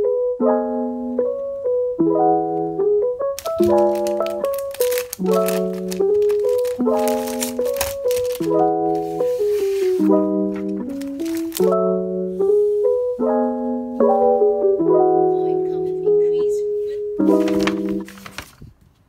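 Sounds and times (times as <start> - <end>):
gentle piano music: 0.0 - 18.5
plastic sheet protectors crinkling: 3.4 - 11.8, 17.2 - 18.7.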